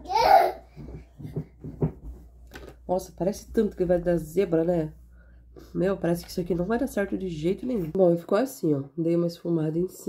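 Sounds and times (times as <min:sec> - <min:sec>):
woman speaking: 0:02.9 - 0:05.0, 0:05.6 - 0:10.0.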